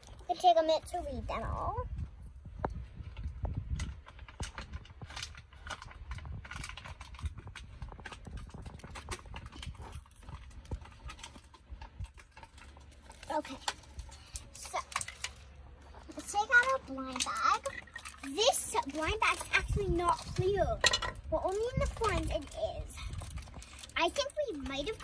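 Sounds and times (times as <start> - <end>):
steady low rumble: 1.0 - 17.1.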